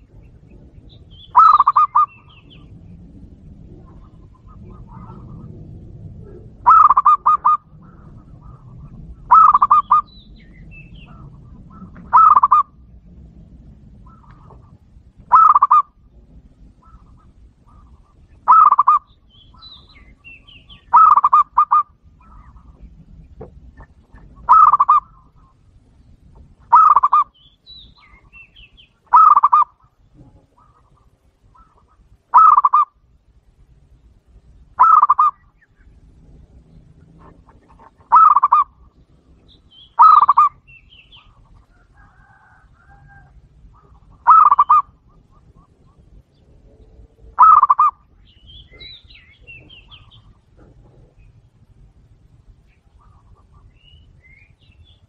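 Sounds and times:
dove cooing: 0.0 - 13.0, 13.7 - 25.6, 26.6 - 27.4, 28.0 - 33.0, 34.8 - 52.0
small birds chirping: 0.0 - 13.2, 13.9 - 55.0.

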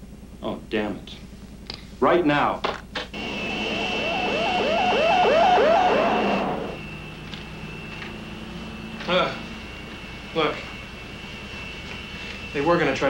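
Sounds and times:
steady cabin hum: 0.0 - 13.0
futuristic vehicle whine with warble: 3.2 - 13.0.

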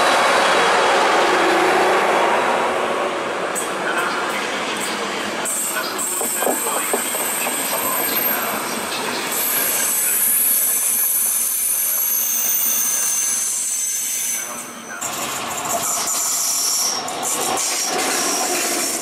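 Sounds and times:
train coaches rumbling past: 0.0 - 19.0
high-pitched wheel squeal: 5.5 - 15.0
wheels clicking over rail joints: 5.6 - 9.5.

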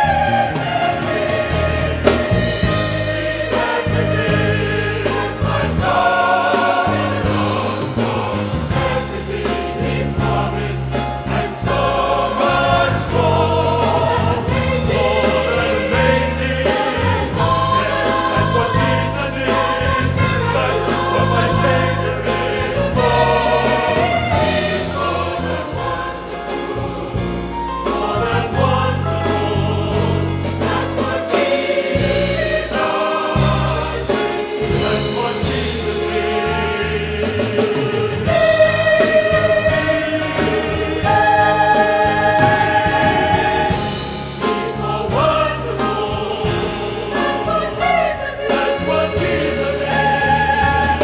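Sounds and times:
choir singing gospel: 0.0 - 51.0
piano accompaniment: 0.0 - 51.0.

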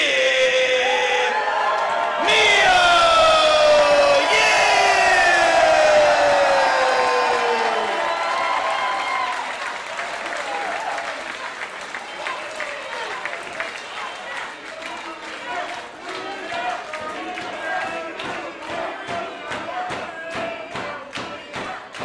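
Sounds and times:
crowd cheering: 0.0 - 22.0
applause: 5.9 - 22.0.

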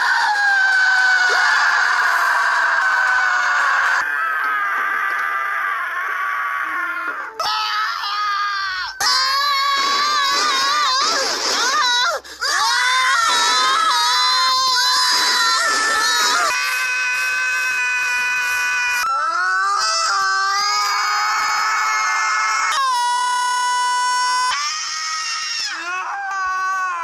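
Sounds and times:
high voices screaming together: 0.0 - 27.0
person screaming: 0.0 - 27.0.

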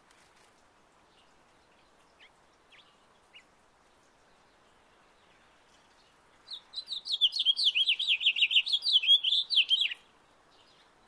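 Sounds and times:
finch singing warbling song: 5.8 - 10.0.

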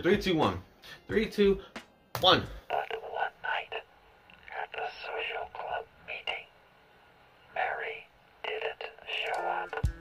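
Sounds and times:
man speaking through radio filter: 4.5 - 6.5.

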